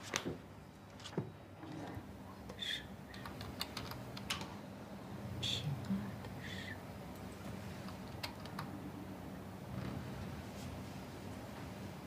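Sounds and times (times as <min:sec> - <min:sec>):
keyboard typing: 0:03.2 - 0:04.5.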